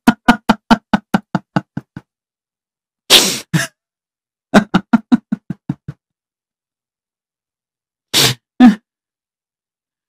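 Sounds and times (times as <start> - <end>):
man laughing: 0.0 - 2.0, 4.6 - 6.0.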